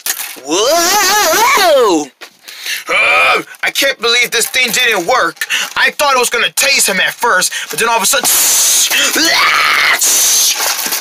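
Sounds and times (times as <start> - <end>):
person yelling rising pitch: 0.4 - 2.1.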